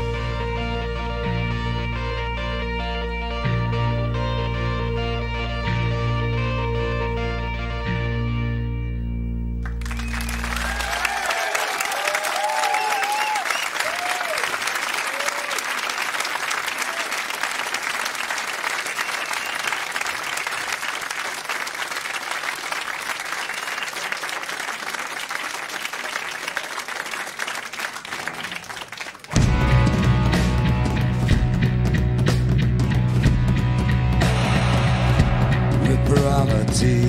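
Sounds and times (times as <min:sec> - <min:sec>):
rock band playing: 0:00.0 - 0:11.1, 0:29.3 - 0:37.0
audience applauding and cheering: 0:09.6 - 0:31.7.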